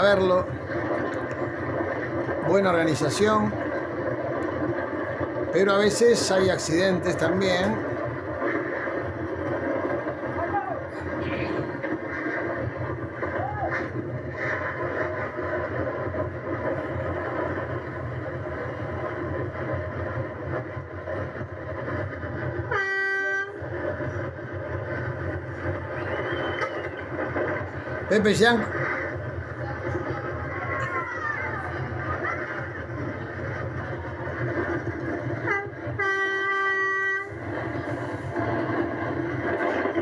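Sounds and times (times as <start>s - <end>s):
kart wheels rattling on asphalt: 0.0s - 18.3s
horn blast: 22.7s - 23.6s.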